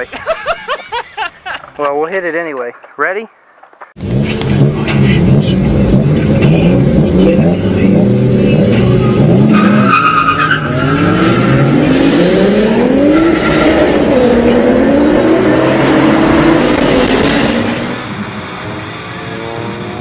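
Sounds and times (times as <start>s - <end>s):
moped engine accelerating: 4.0s - 9.9s, 10.6s - 20.0s.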